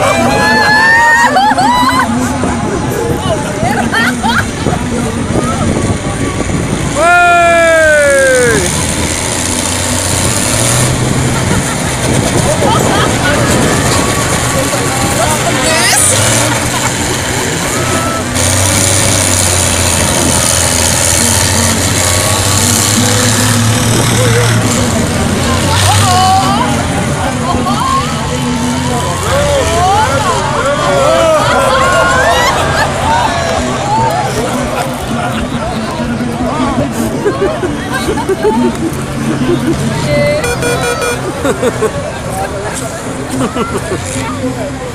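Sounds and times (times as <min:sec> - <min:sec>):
diesel engines droning: 0:00.0 - 0:44.9
voices: 0:00.0 - 0:44.9
loud tone falling in pitch: 0:40.4 - 0:41.3.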